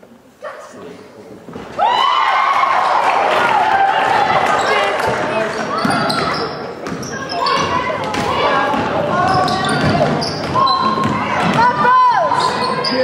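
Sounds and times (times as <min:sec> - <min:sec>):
people calling out and cheering: 0:01.7 - 0:13.0
basketball dribbling on hardwood: 0:06.8 - 0:11.7.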